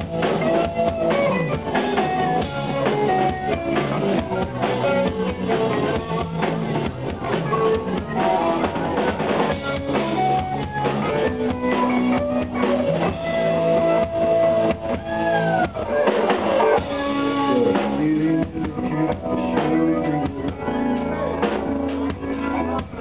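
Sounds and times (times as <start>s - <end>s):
bass guitar: 0.0s - 23.0s
drum kit: 0.0s - 23.0s
electric guitars: 0.0s - 23.0s.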